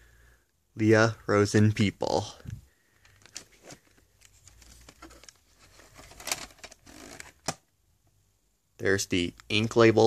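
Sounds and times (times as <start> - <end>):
plastic case rustling: 3.0 - 7.6.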